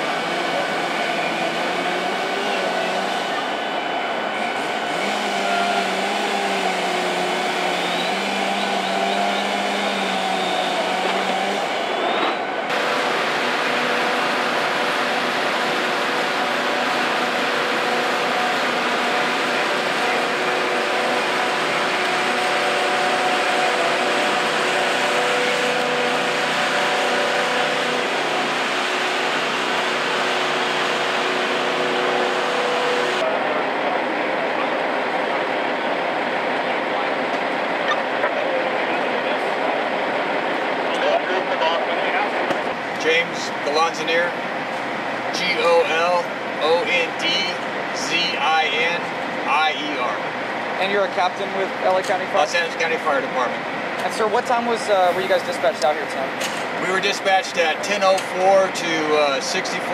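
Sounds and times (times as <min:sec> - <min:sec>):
fire engine pumps droning: 0:00.0 - 0:59.9.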